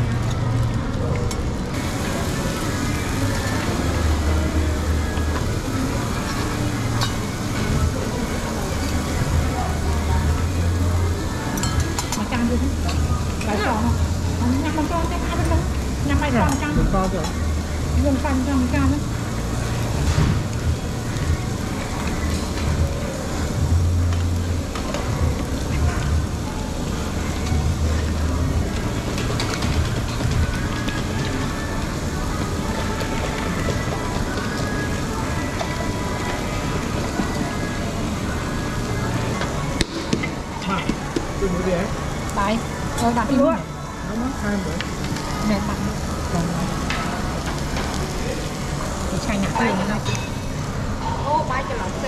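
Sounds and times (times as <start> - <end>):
background music: 0.0 - 52.0
restaurant chatter: 0.0 - 52.0
ventilation hum: 0.0 - 52.0
voices talking: 1.8 - 19.4
grill sizzling hiss: 1.8 - 52.0.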